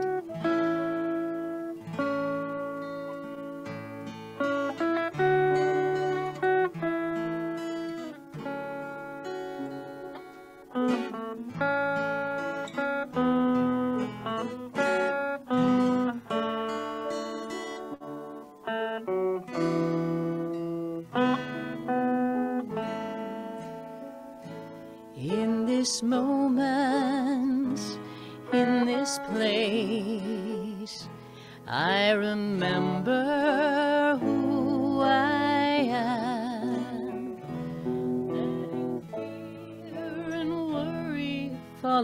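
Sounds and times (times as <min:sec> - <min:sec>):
acoustic guitar strumming chords: 0:00.0 - 0:42.0
person singing: 0:25.1 - 0:42.0.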